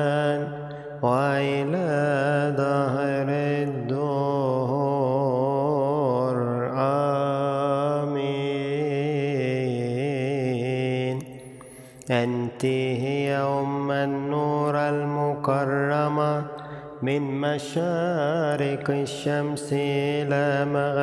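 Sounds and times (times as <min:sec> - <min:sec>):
solo voice chanting a prayer: 0:00.0 - 0:21.0.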